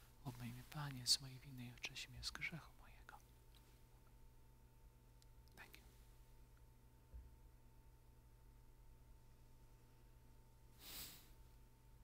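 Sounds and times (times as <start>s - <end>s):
man praying in a low voice: 0.2s - 3.3s.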